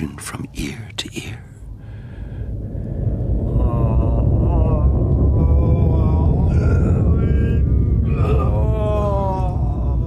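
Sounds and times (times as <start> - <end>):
low rumble: 0.0 - 10.0
man moaning cries: 3.6 - 10.0.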